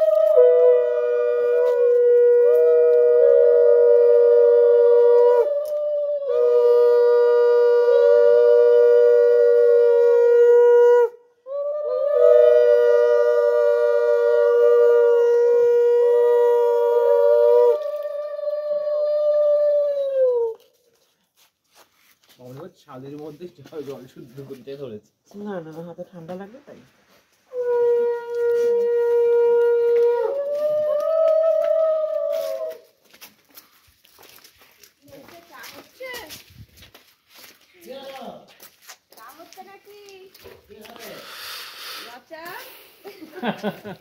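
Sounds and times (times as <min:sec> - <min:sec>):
conch shell low blast: 0:00.0 - 0:05.5.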